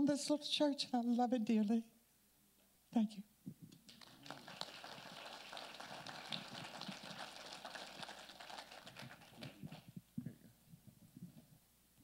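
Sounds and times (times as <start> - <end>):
congregation applauding: 3.9 - 9.9.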